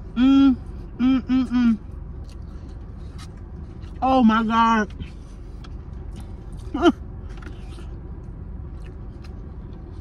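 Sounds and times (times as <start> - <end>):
car engine idling: 0.0 - 10.0
chewing and mouth clicks: 2.0 - 4.0, 4.9 - 10.0.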